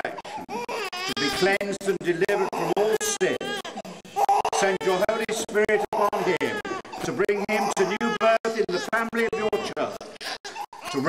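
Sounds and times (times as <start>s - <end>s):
person speaking: 0.0s - 11.0s.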